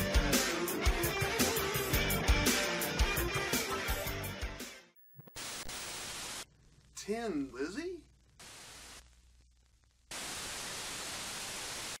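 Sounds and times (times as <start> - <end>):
static hiss: 4.9 - 12.0.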